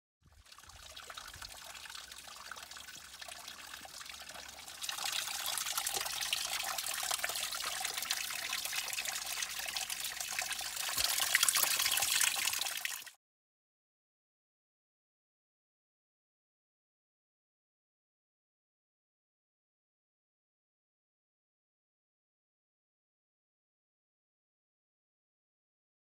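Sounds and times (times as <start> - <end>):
brook trickling over stones: 0.3 - 13.2.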